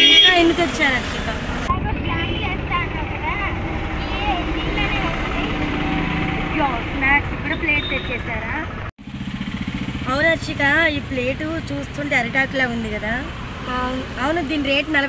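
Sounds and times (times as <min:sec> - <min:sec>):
people talking: 0:00.0 - 0:08.7, 0:10.0 - 0:15.0
street traffic rumble: 0:00.0 - 0:15.0.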